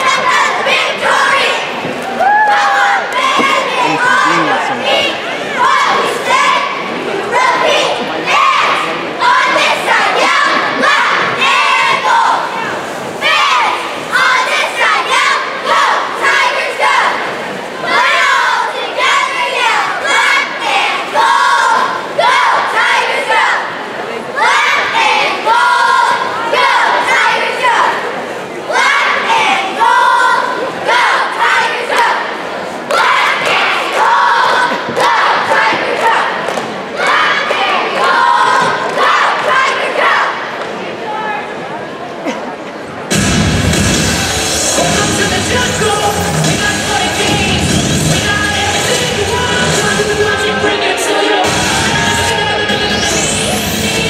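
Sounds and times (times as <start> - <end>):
cheerleaders shouting in unison: 0.0 - 41.6
sharp hitting sounds: 43.1 - 48.3.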